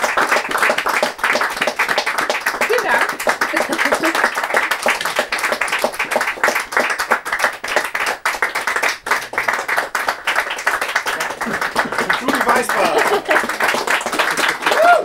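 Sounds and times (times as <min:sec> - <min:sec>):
audience applauding: 0:00.0 - 0:15.0.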